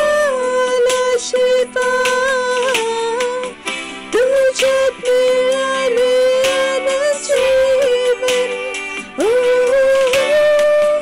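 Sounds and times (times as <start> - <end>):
woman singing: 0.0 - 11.0.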